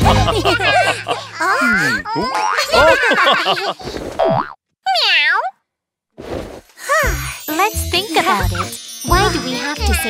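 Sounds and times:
high cartoon character voice: 4.9s - 5.5s, 6.8s - 10.0s.

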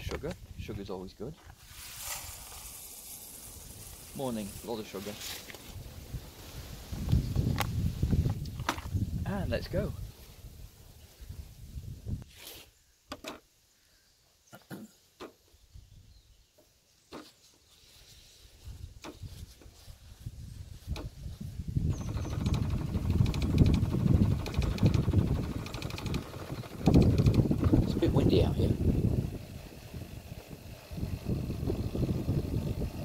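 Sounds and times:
coffee machine clicks: 21.9s - 28.0s
coffee machine pump running: 21.9s - 33.0s.

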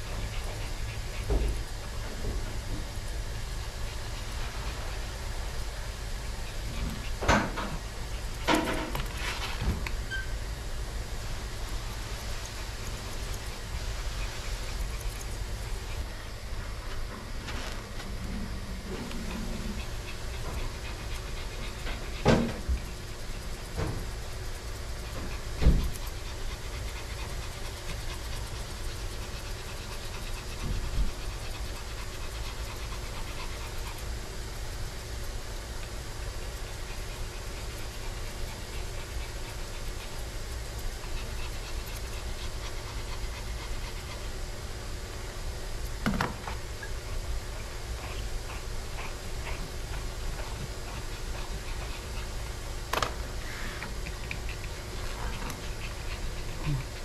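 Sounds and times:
dog panting: 0.0s - 57.0s
steady background hum: 0.0s - 57.0s.

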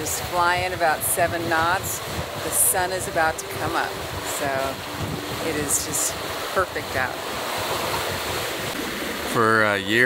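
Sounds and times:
water running along a hull: 0.0s - 10.0s
wind rushing: 0.4s - 9.6s.

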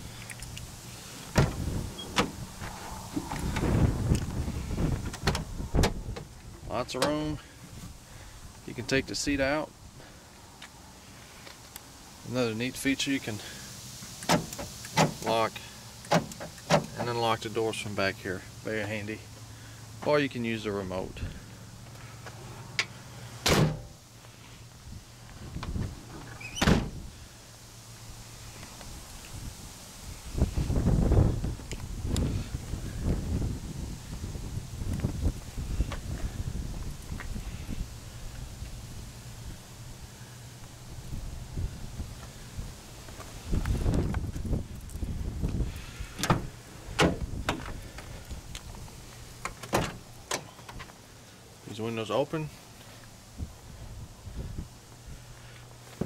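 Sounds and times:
door opening clunk: 1.3s - 2.4s, 5.0s - 6.3s, 23.4s - 23.9s, 46.2s - 47.8s
van doors slamming: 1.3s - 3.9s, 5.0s - 6.3s, 14.3s - 15.3s, 23.4s - 23.9s, 26.1s - 27.0s, 46.2s - 47.8s, 49.5s - 50.6s.

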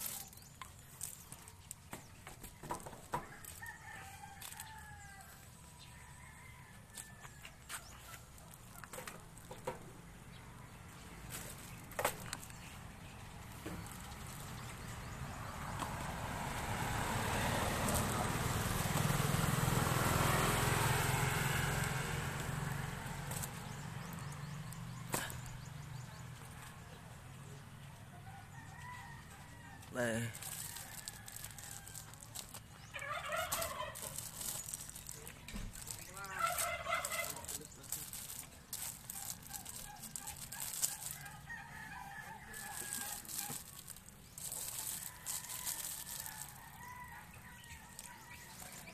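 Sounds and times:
outdoor background noise: 0.0s - 48.9s.

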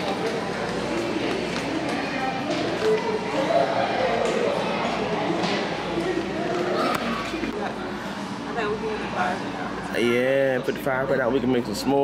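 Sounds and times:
indistinct voices and chatter: 0.0s - 12.0s.

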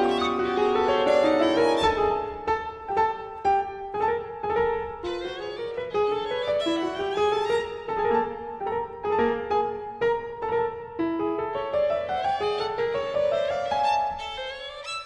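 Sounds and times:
piano accompaniment: 0.0s - 15.0s
violin melody: 0.0s - 15.0s.

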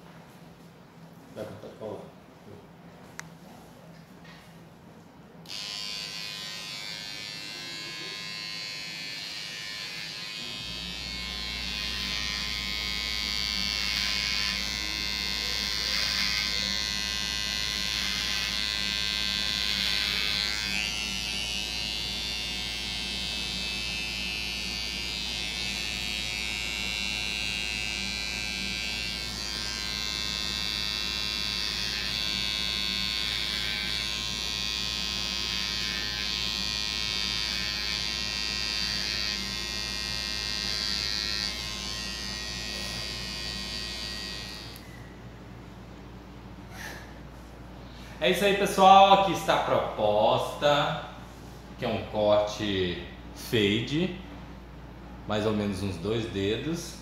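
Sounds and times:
electric hair clipper buzzing: 5.4s - 45.0s.

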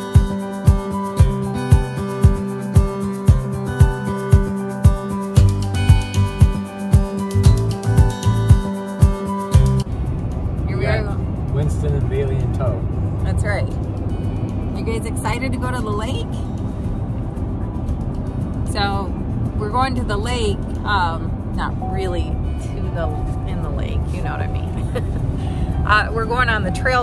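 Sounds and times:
background music: 0.0s - 27.0s
road noise inside car: 9.6s - 27.0s.

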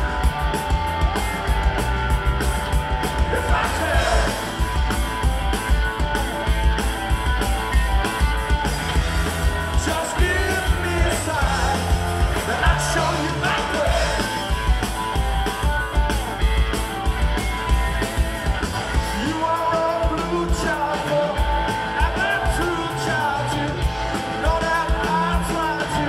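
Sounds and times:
distorted electric guitar: 0.0s - 26.0s
drum kit beat: 0.0s - 26.0s
electric bass: 0.0s - 26.0s.

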